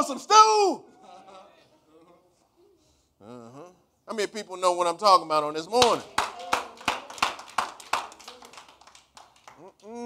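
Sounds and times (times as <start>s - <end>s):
hand claps: 5.8s - 10.0s.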